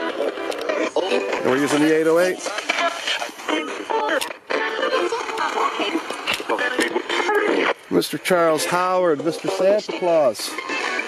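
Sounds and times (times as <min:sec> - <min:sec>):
radio sweeping through stations: 0:00.0 - 0:11.0.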